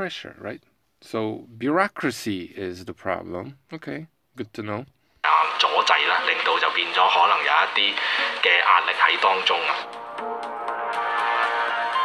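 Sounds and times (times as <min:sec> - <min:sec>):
man speaking: 0:00.0 - 0:09.9.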